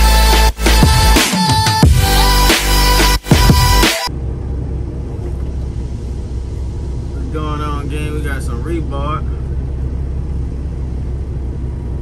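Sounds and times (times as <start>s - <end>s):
electronic music with heavy bass: 0.0s - 4.2s.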